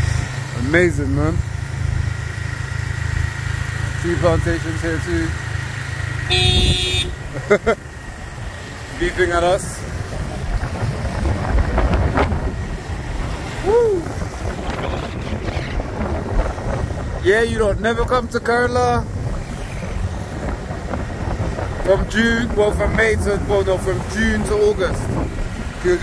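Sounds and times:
moped engine rumble: 0:00.0 - 0:26.0
road noise: 0:00.0 - 0:26.0
wind: 0:00.0 - 0:26.0
vehicle horn honks: 0:06.2 - 0:07.3.

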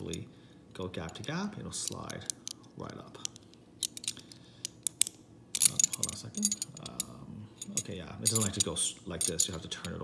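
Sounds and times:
metal puzzle pieces clicking: 0:03.2 - 0:10.0.

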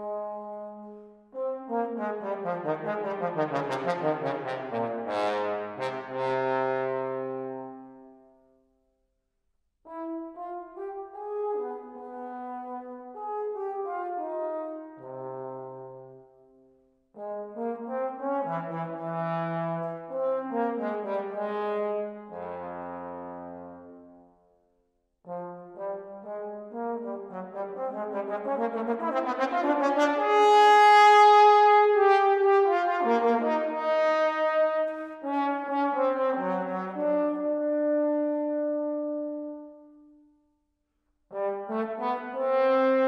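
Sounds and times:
solo trombone: 0:00.0 - 0:08.2, 0:09.8 - 0:16.3, 0:17.2 - 0:24.3, 0:25.2 - 0:40.0, 0:41.3 - 0:43.0.

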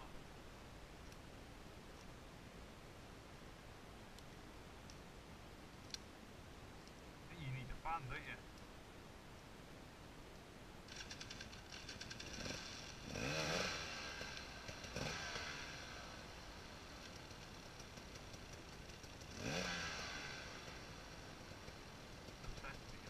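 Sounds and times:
motorcycle engine revving: 0:10.9 - 0:23.0.

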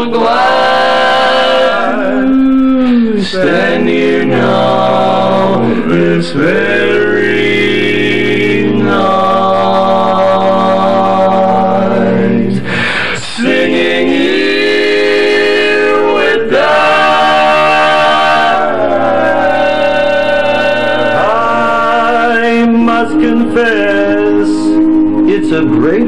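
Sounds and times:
men singing barbershop harmony: 0:00.0 - 0:26.0.

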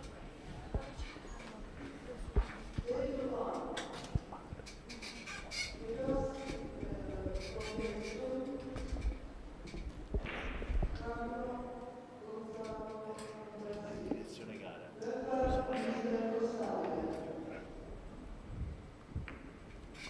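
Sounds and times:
indistinct voices in hall: 0:00.0 - 0:19.0.

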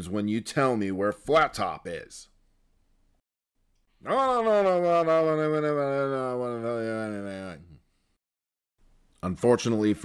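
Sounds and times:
man's long wordless vocal: 0:04.0 - 0:07.8.

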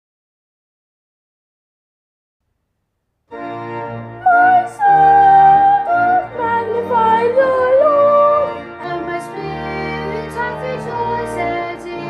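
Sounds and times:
boys choir singing: 0:04.2 - 0:12.0.

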